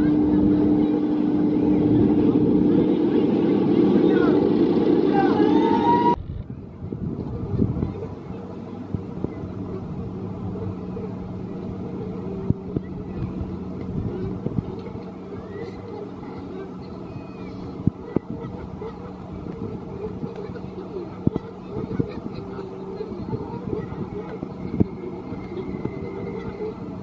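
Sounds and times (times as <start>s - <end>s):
faint distant voices: 0.0s - 27.0s
steady low hum: 0.0s - 27.0s.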